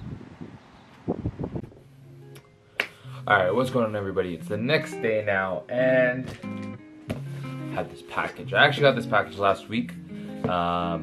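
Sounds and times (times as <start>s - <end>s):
background music with held notes: 1.9s - 11.0s
hand clap: 2.8s - 3.1s.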